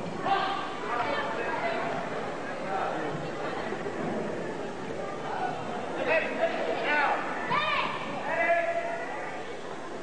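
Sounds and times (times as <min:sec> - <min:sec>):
background talking: 0:00.0 - 0:10.0.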